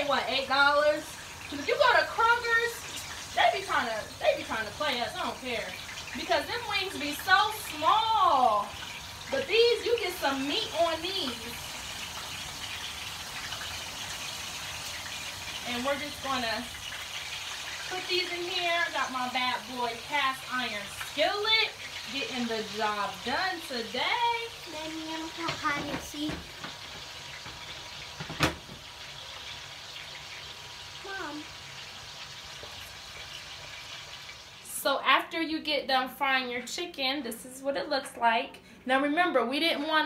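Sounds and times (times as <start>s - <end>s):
wings deep-frying in oil: 0.0s - 40.0s.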